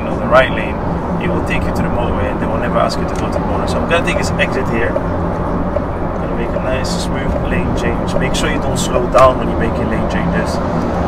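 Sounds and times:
man talking: 0.0 - 5.0, 6.2 - 10.7
car road noise: 0.0 - 11.0
low engine hum: 0.0 - 11.0.

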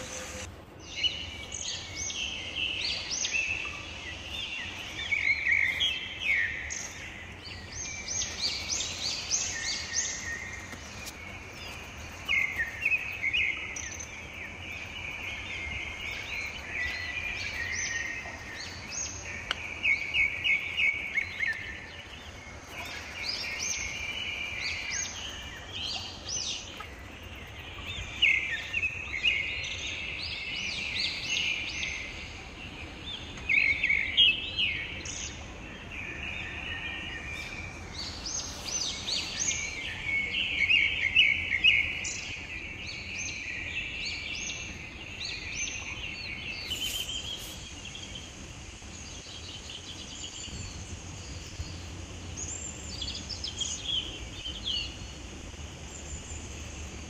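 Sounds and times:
birds chirping and singing: 0.0 - 57.0
faint steady background hum: 0.0 - 57.0.

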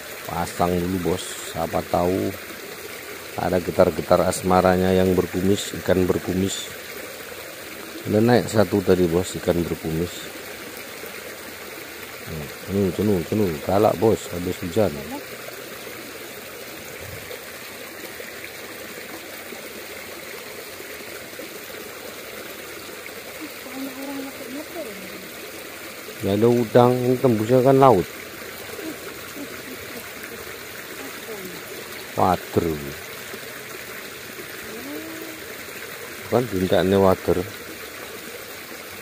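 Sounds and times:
stream water flowing: 0.0 - 39.0.

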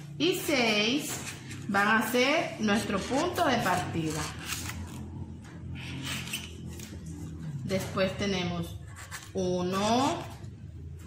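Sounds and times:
low steady hum: 0.0 - 11.0
marker scratching on paper: 8.3 - 10.0.

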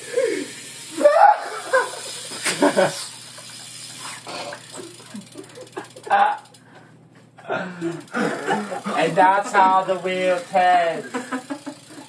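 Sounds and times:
people shouting and whooping: 0.4 - 1.9
people laughing: 1.0 - 3.1, 4.8 - 6.2, 7.6 - 9.9, 11.0 - 12.0.

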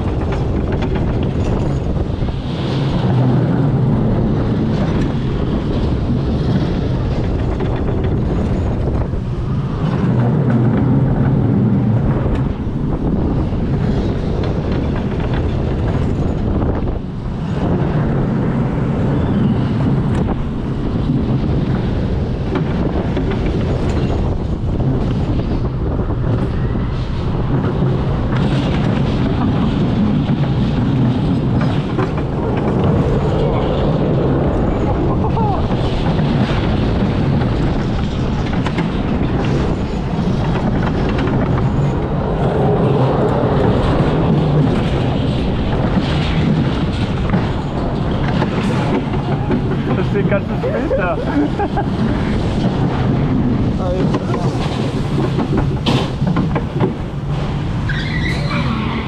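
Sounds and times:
roller coaster wheels rumbling: 0.0 - 59.0
rushing air on microphone: 0.0 - 59.0.

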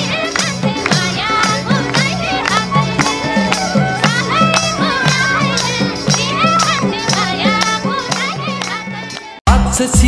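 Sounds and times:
hand drum beat: 0.0 - 9.2
group voices singing: 0.0 - 9.4
hand clapping: 0.0 - 9.4
bamboo flute melody: 1.2 - 7.8.

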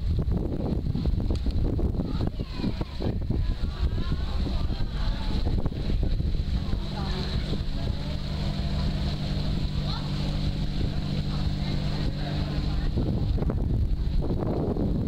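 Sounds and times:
wind rumble on microphone: 0.0 - 15.0
boat engine droning: 1.8 - 15.0.

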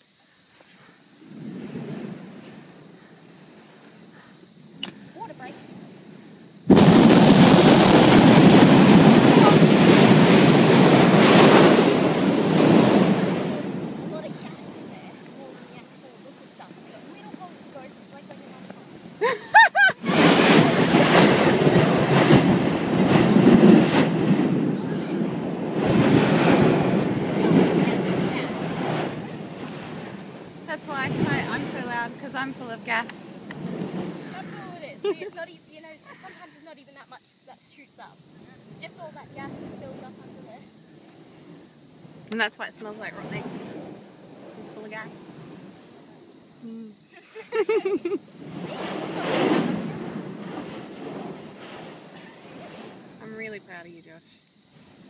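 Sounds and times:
volcano vent erupting: 0.2 - 37.0, 37.9 - 53.7
person laughing: 19.2 - 20.1, 47.2 - 48.2.

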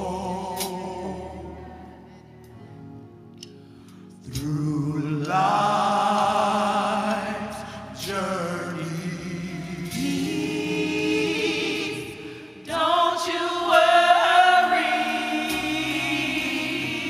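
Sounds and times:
choir singing held notes: 4.4 - 17.0.

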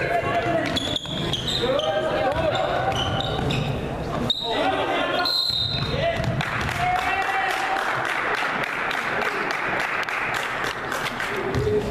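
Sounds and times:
voices calling out in gym: 0.0 - 9.6
short high shoe squeaks: 0.6 - 5.9.

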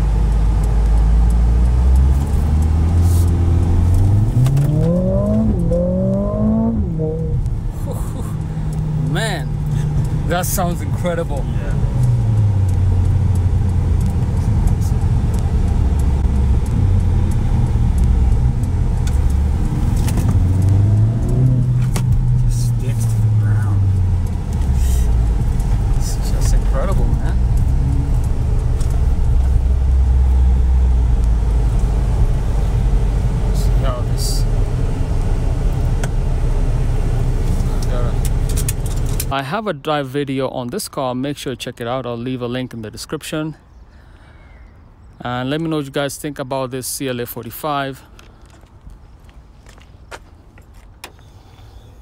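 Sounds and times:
car engine droning: 0.0 - 40.4.

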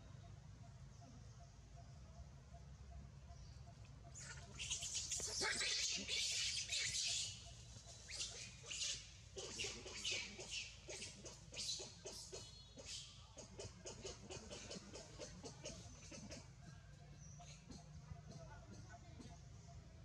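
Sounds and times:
high-pitched animal chirps and squeaks: 4.2 - 13.1.

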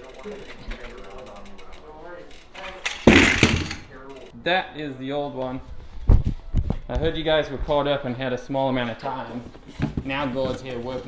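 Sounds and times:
bike freehub ticking: 0.0 - 3.0.

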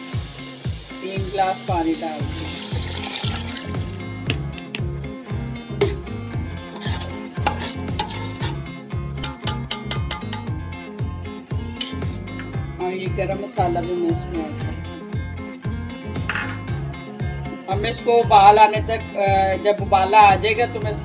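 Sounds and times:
water sizzling: 0.0 - 4.8, 5.7 - 10.4
background music with bass beat: 2.4 - 19.5
metal spoon scraping steel pot: 6.6 - 10.5, 11.8 - 12.4.

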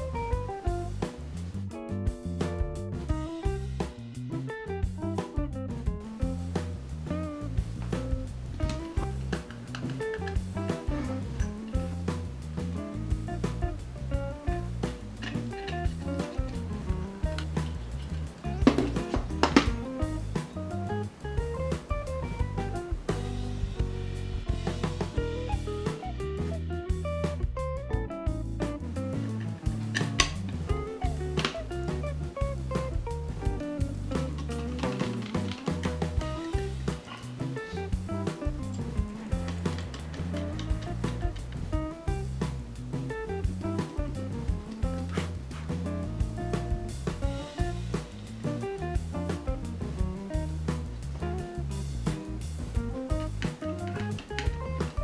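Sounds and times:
guitar tune over a steady beat: 0.0 - 55.0.

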